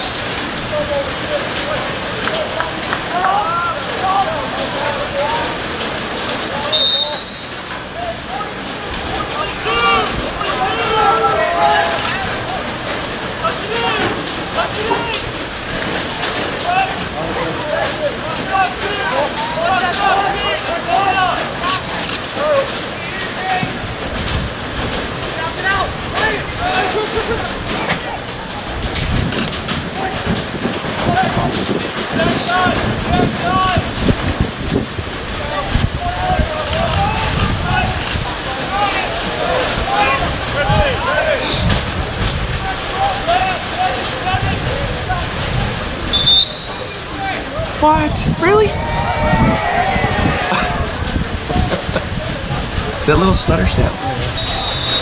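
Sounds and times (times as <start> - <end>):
players shouting and calling: 0.0 - 24.1, 25.1 - 28.8, 29.7 - 55.0
wind rumbling on microphone: 28.4 - 42.9, 44.2 - 46.3, 47.7 - 54.4.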